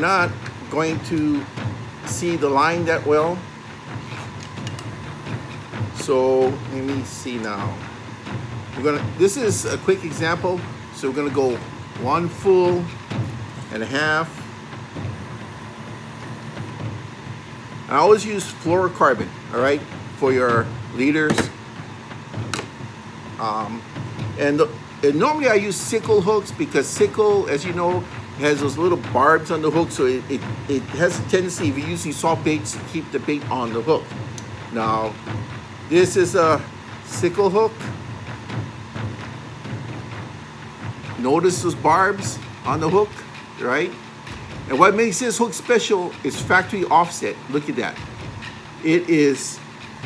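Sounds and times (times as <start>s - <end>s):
low machinery hum: 0.0s - 50.0s.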